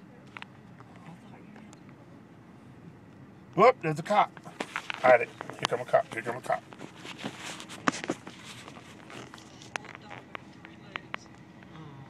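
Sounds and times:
phone handling rustling: 4.4s - 11.1s.

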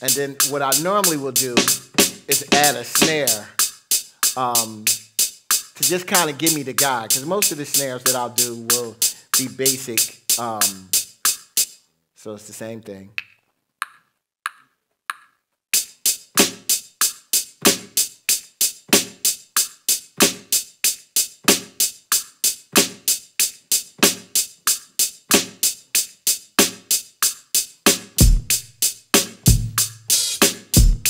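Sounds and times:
programmed drum loop: 0.0s - 11.8s, 15.8s - 31.0s.

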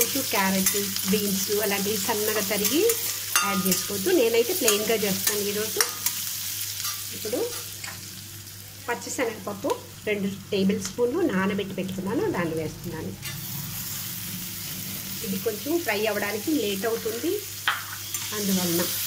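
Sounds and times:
onions sizzling in oil: 0.0s - 19.0s.

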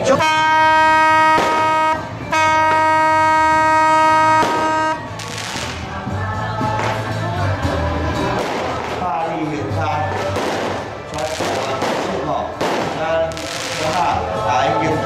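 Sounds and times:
vehicle horn blasts: 0.0s - 5.2s
street noise: 0.0s - 15.0s.

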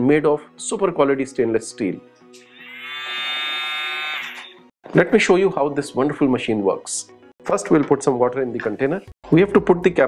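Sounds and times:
milk frother motor whine: 2.4s - 4.7s.

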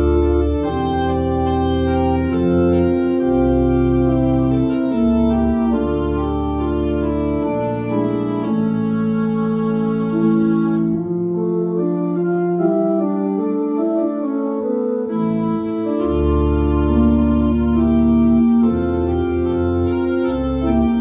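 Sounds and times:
deep organ pedal bass notes: 0.0s - 21.0s
organ playing hymn-like chords: 0.0s - 21.0s.

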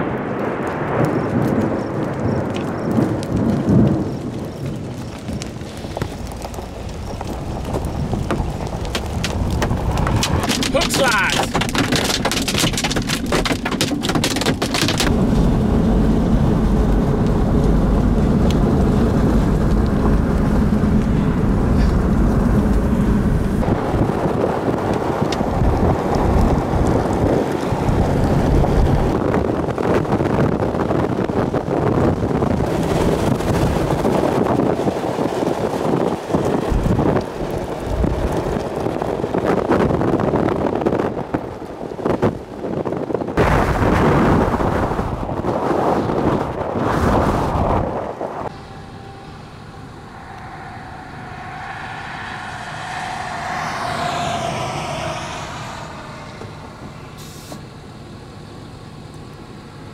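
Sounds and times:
heavy rain on vehicle: 0.0s - 43.8s
wind noise: 0.0s - 59.5s
tyre and road noise: 0.0s - 59.9s
drops or hail hitting vehicle: 1.0s - 15.5s.

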